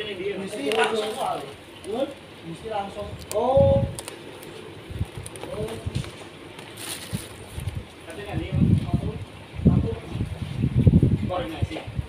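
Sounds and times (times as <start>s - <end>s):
plastic containers rustling: 3.2s - 8.0s.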